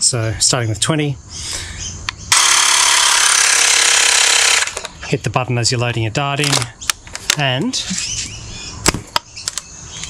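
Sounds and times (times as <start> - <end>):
portable air pump running: 2.3 - 4.9.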